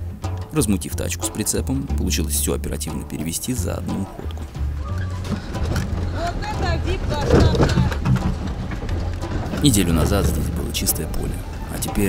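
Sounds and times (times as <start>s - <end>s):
people's voices: 0.5s - 12.0s
car engine droning: 2.2s - 12.0s.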